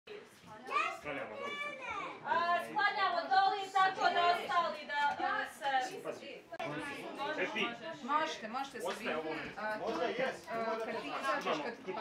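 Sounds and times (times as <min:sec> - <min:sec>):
child speaking: 0:00.6 - 0:02.2.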